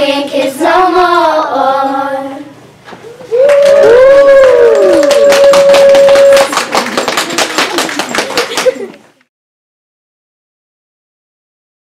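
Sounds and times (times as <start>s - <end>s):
audience whooping and cheering: 3.0s - 6.8s
audience clapping: 3.3s - 9.0s.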